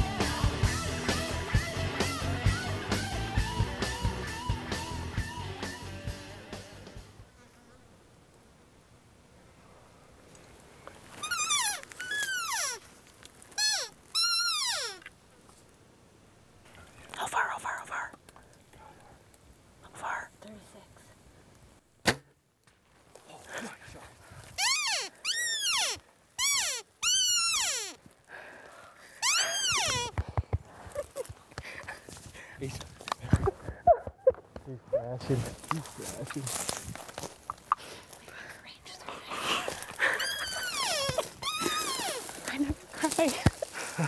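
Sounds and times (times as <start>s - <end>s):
high excited squeals: 11.2s - 12.8s, 13.6s - 15.0s, 24.6s - 28.0s, 29.2s - 30.1s, 40.0s - 42.3s
hushed whispering: 16.7s - 18.2s, 19.8s - 21.2s, 38.0s - 39.8s.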